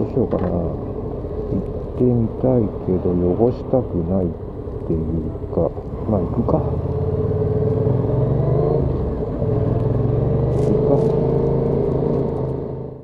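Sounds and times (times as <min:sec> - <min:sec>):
motorcycle engine running: 0:00.0 - 0:13.0.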